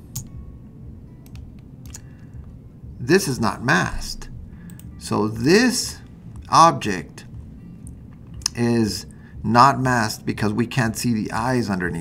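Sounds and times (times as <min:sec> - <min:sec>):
low steady room hum: 0:00.0 - 0:12.0.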